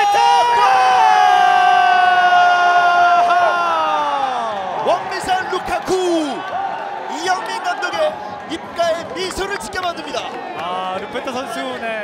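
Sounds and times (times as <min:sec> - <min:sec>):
crowd cheering: 0:00.0 - 0:12.0.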